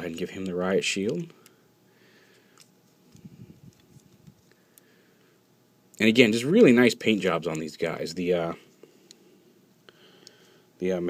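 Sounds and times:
soft rubbing of plastic: 0:02.8 - 0:04.6.

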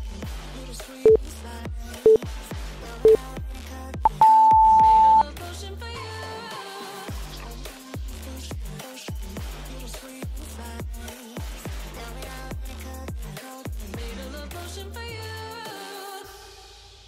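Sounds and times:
electronic music with steady beat: 0:04.1 - 0:05.2
timer beeps: 0:04.1 - 0:05.2.

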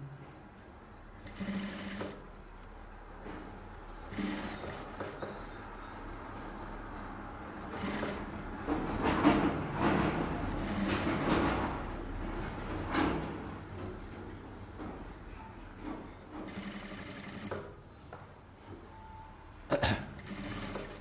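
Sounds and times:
sewing machine stitching: 0:01.2 - 0:02.3, 0:04.0 - 0:05.3, 0:07.6 - 0:11.9, 0:16.3 - 0:17.8, 0:20.1 - 0:21.0.

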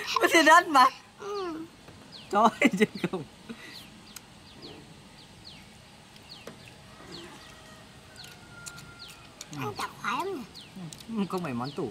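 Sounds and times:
faint bird chirping: 0:00.0 - 0:11.9.

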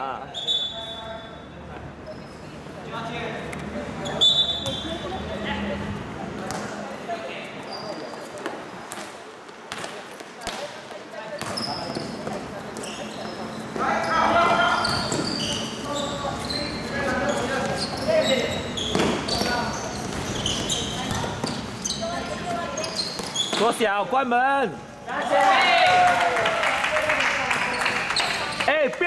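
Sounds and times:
sneakers squeaking: 0:00.2 - 0:23.8, 0:27.5 - 0:28.7.

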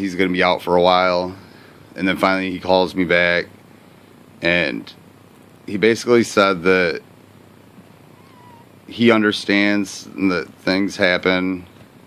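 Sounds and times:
cat purring: 0:07.9 - 0:09.2.

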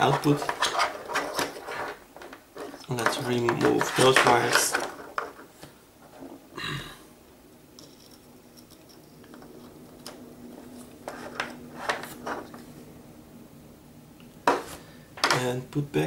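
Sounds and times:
faint steady hum: 0:00.0 - 0:16.0.

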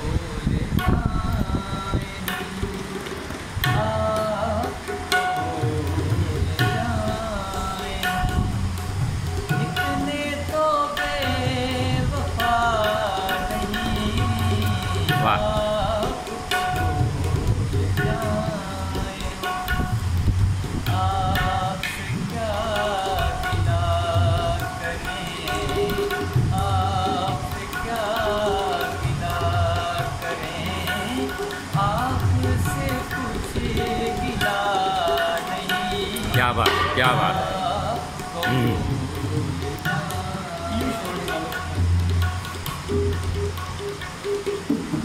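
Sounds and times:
man singing: 0:00.0 - 0:20.0, 0:20.8 - 0:42.1
tabla drum strokes: 0:00.0 - 0:45.0.

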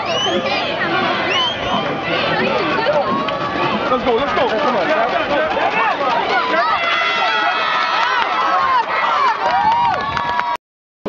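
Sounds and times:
crowd yelling and cheering: 0:00.0 - 0:10.6.

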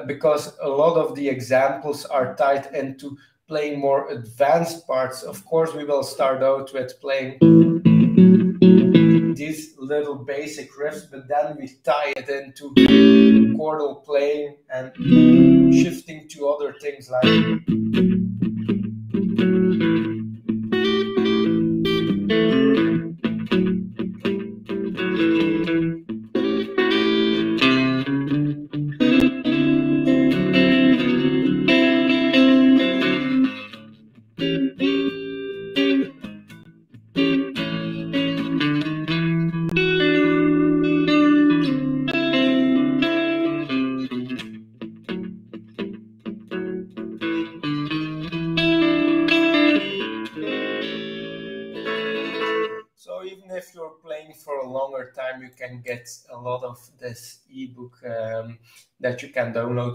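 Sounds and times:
electric guitar blues riffs: 0:07.4 - 0:09.5, 0:12.6 - 0:13.7, 0:14.7 - 0:52.9.

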